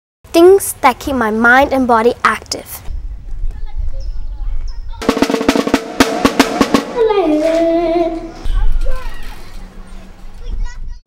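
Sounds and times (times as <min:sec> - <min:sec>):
faint children's voices: 0:03.4 - 0:05.1, 0:07.0 - 0:11.0
child singing a note: 0:07.0 - 0:08.4.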